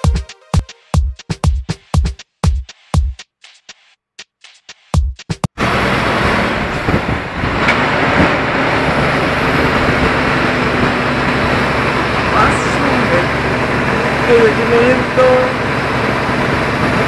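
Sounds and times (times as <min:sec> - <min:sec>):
electronic music: 0:00.0 - 0:05.5
car engine hum: 0:05.6 - 0:17.0
road noise: 0:05.6 - 0:17.0.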